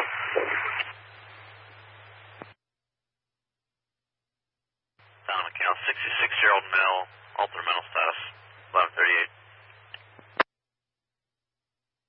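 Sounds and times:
tinny radio voice: 0:00.0 - 0:00.9, 0:05.3 - 0:09.3
radio squelch click: 0:00.0 - 0:01.0, 0:02.1 - 0:02.6, 0:09.6 - 0:10.5
low steady hum: 0:00.0 - 0:02.6, 0:05.0 - 0:10.4.

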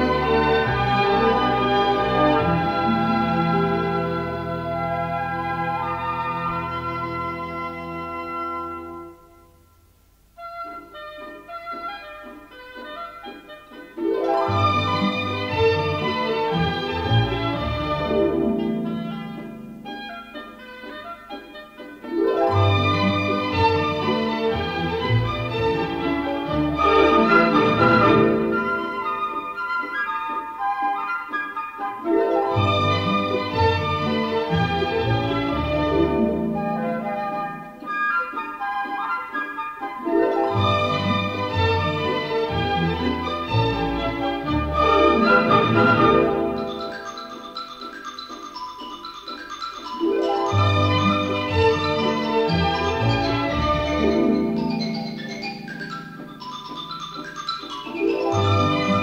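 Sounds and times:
pizzicato strings: 0:00.0 - 0:08.6, 0:13.7 - 0:59.0
orchestra playing dance tune: 0:00.0 - 0:09.3, 0:10.3 - 0:59.0
flute melody: 0:00.0 - 0:09.6, 0:10.3 - 0:59.0
harp: 0:10.4 - 0:59.0
xylophone quick notes: 0:26.7 - 0:31.2, 0:43.1 - 0:59.0.

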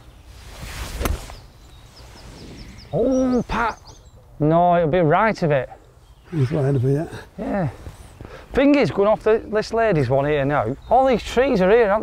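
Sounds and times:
golf swing whoosh: 0:00.6 - 0:01.4, 0:02.0 - 0:03.2.

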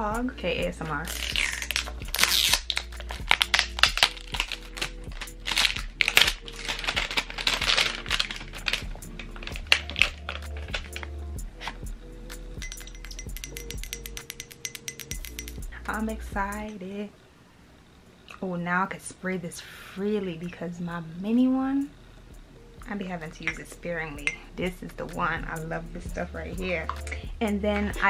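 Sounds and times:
background music: 0:00.0 - 0:16.8, 0:20.0 - 0:28.0
wrapping crinkling: 0:01.0 - 0:11.8.

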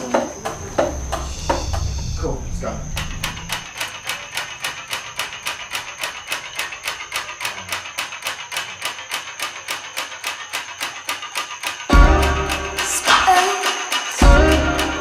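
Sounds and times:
clicking percussion ticks: 0:00.1 - 0:15.0.

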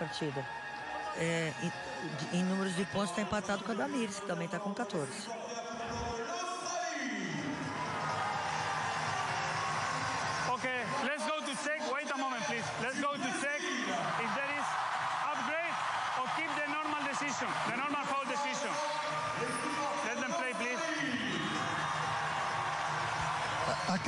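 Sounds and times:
officials talking on microphone: 0:00.0 - 0:07.7
arena crowd noise: 0:00.0 - 0:24.0.

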